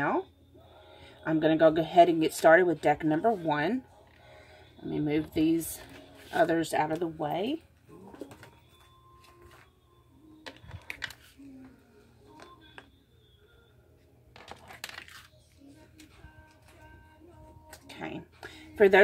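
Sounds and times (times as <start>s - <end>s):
faint background music: 0.0s - 19.0s.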